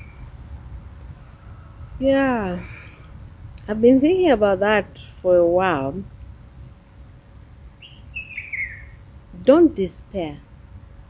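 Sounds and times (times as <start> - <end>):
bird chirping: 0.0 - 0.3, 7.8 - 9.0
low background rumble: 0.0 - 11.0.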